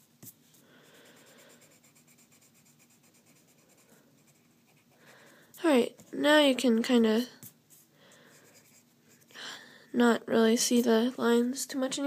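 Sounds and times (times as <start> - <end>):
eraser rubbing on paper: 0.0 - 5.0.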